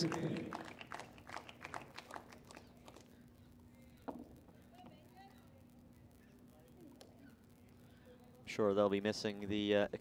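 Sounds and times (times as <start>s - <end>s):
crowd hand-clapping: 0.0s - 3.2s
faint low hum: 0.0s - 10.0s.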